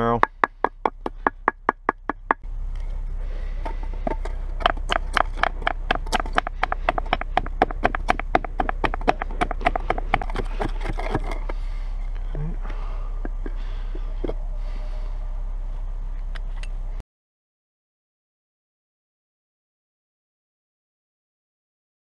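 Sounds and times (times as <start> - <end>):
wooden stick pounding on stone: 0.0 - 2.4, 3.6 - 11.6
stick mashing berries in a cup: 3.6 - 11.6.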